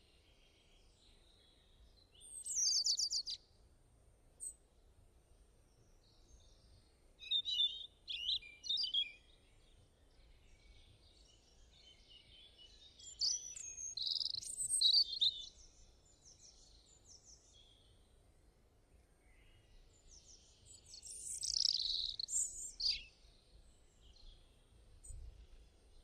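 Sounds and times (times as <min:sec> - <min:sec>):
small birds chirping: 0:00.2 - 0:03.4, 0:05.7 - 0:18.1, 0:19.2 - 0:26.0.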